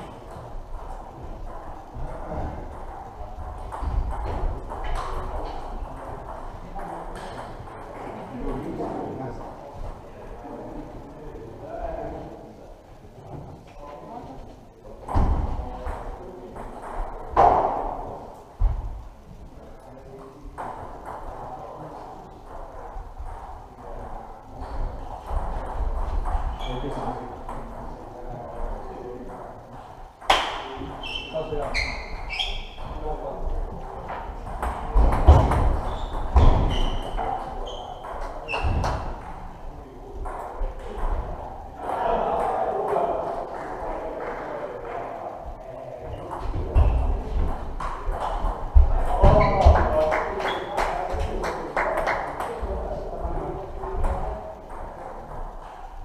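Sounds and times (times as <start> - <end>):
voices in echoing hall: 0.0 - 56.0.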